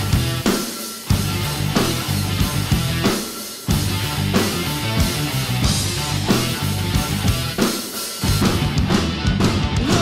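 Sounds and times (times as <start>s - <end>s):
acoustic drum kit playing: 0.0s - 10.0s
rock backing track: 0.0s - 10.0s.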